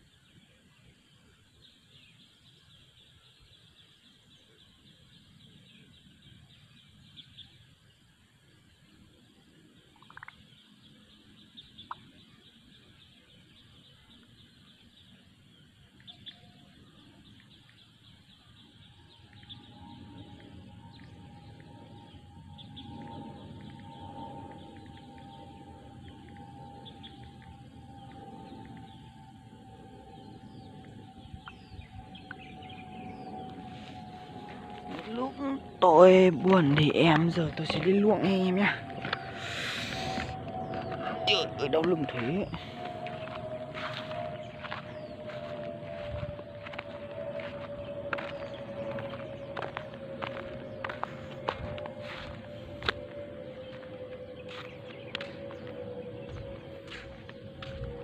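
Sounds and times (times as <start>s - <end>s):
low steady hum: 0.0s - 58.0s
bird chirps: 8.8s - 58.0s
pulsing high-pitched buzz: 10.5s - 58.0s.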